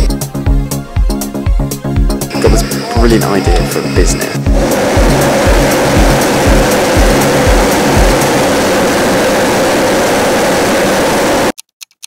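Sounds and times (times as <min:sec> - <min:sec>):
music beat: 0:00.0 - 0:08.8
propane burner roaring: 0:02.3 - 0:11.6.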